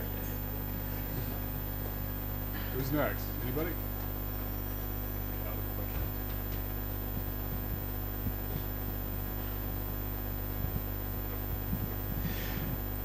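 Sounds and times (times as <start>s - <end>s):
electrical mains hum: 0.0s - 13.0s.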